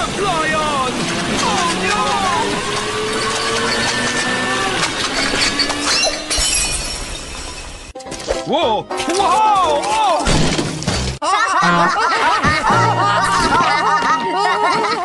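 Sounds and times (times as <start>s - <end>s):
high squealing glides: 0.6s - 8.0s.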